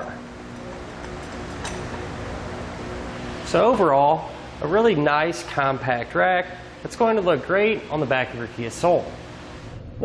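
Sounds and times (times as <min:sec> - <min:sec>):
fan humming: 0:00.0 - 0:10.0
bike rack rumbling when rocked: 0:00.5 - 0:02.1.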